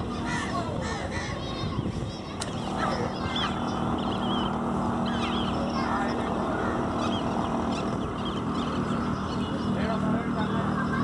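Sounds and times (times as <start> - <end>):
bird chirps and calls: 0.0 - 11.0
broad rushing noise: 0.0 - 11.0
low engine hum: 0.0 - 11.0.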